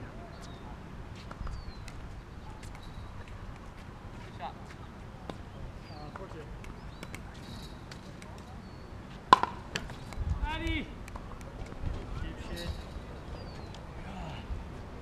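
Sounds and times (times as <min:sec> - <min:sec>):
paddle hitting ball: 0:09.3 - 0:09.9.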